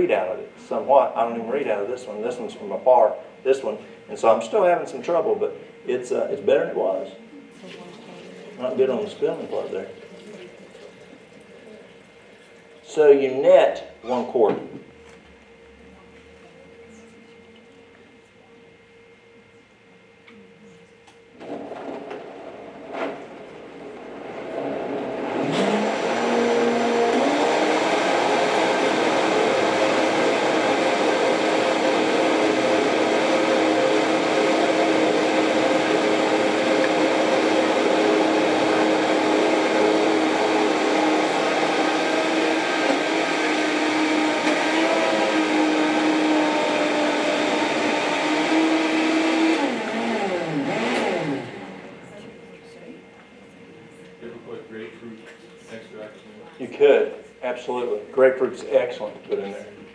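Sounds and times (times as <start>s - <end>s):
blender motor whining: 21.3s - 52.2s.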